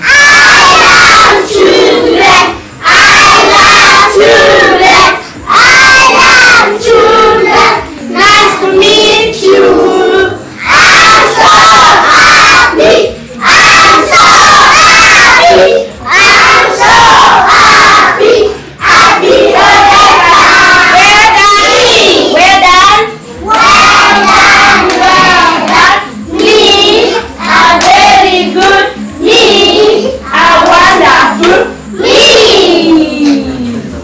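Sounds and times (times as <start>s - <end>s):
young children chanting a song: 0.0s - 33.6s.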